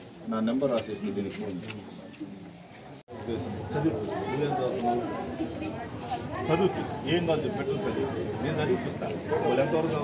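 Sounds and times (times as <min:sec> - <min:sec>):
people talking in a crowd: 0:00.0 - 0:10.0.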